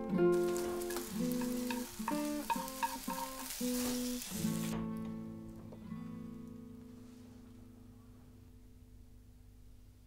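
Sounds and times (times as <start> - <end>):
plucked guitar notes: 0.0 - 6.9
food sizzling in a frying pan: 0.2 - 4.8.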